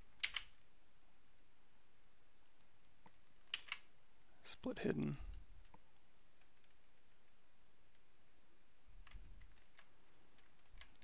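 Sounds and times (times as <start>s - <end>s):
faint room hum: 0.0s - 11.0s
computer mouse clicks: 0.2s - 0.6s, 2.5s - 3.9s.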